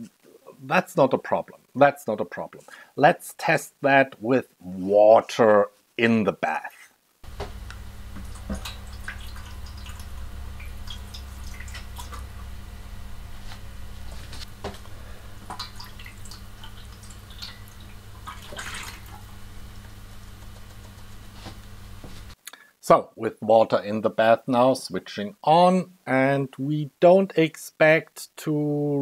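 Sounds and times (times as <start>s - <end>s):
steady low hum: 7.2s - 22.4s
water pouring into metal tray: 8.2s - 12.4s, 15.0s - 19.3s.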